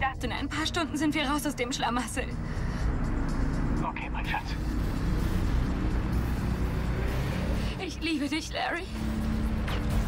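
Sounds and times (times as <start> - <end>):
motor vehicle rumbling: 2.2 - 10.0.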